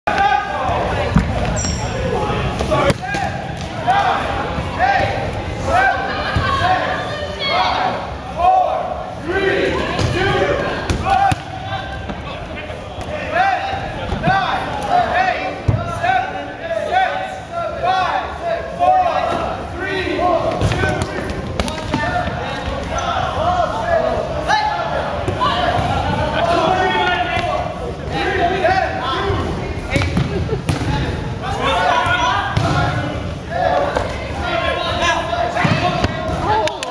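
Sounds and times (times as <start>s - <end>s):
players' voices in a hall: 0.1s - 36.9s.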